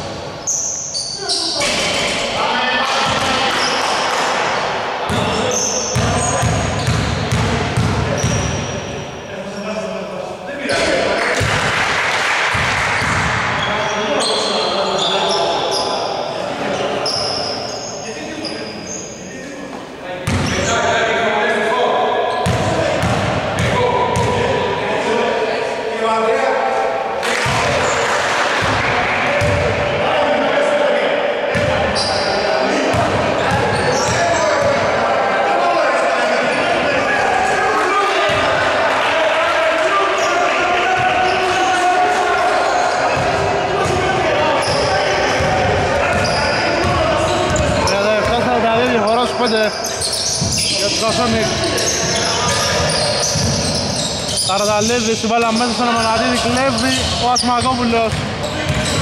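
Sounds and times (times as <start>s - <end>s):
players' voices: 0.0s - 59.0s
basketball bouncing on wooden floor: 6.0s - 8.4s, 58.1s - 59.0s.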